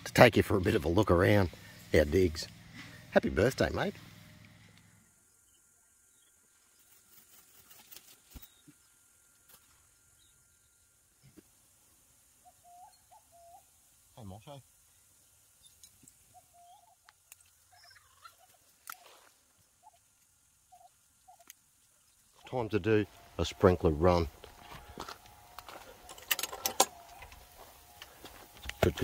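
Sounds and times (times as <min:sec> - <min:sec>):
faint bird call: 0:12.4 - 0:14.4, 0:16.3 - 0:20.0
metal gate clinking and rattling: 0:26.0 - 0:27.5.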